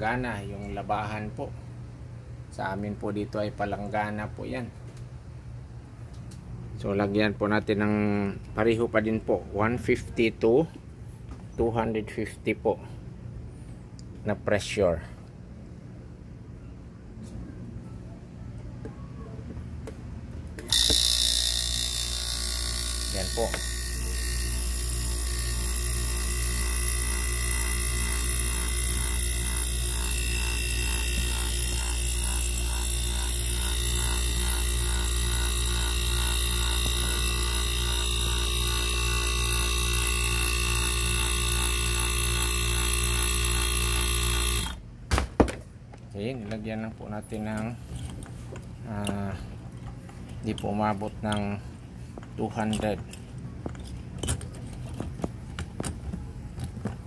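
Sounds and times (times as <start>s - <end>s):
electric air compressor running: 20.6s - 44.8s.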